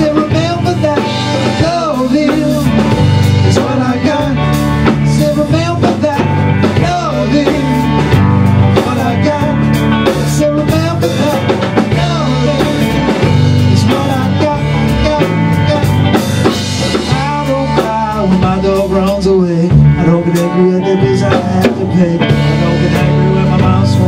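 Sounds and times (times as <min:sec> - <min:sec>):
bass guitar: 0:00.0 - 0:24.0
drum kit: 0:00.0 - 0:24.0
electric guitar: 0:00.0 - 0:24.0
sliding lead melody: 0:00.0 - 0:24.0.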